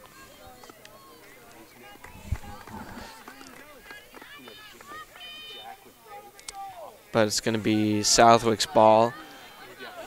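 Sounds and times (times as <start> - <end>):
voices calling and shouting: 0.0 - 10.0.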